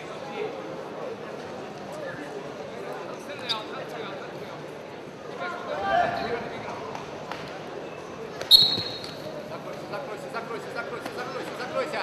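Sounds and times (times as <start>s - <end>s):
murmur of arena crowd: 0.0s - 12.0s
referee's whistle blast: 8.5s - 9.2s.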